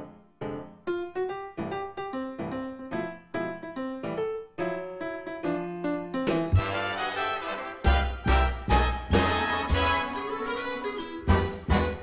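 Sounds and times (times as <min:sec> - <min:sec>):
solo piano melody: 0:00.0 - 0:12.0.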